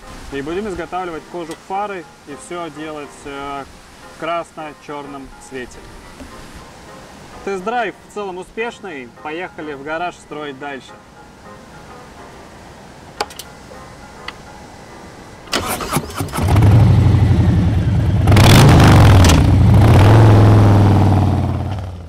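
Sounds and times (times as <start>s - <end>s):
starter cranking: 15.5s - 16.7s
engine revving: 15.5s - 22.0s
motorcycle engine running: 16.2s - 22.0s.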